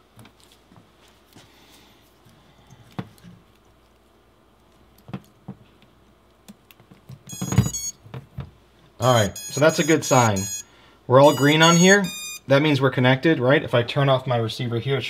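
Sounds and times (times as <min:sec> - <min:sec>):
electronic beeps from motors: 0:07.3 - 0:08.0, 0:09.0 - 0:12.5.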